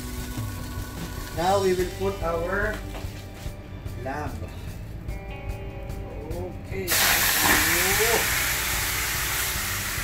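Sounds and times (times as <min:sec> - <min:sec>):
meat sizzling in a skillet: 0:00.0 - 0:01.8, 0:06.9 - 0:10.0.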